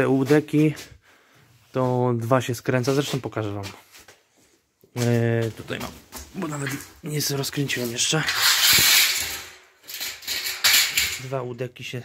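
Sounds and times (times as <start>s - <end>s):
metal profiles scraping on concrete: 7.7s - 11.2s.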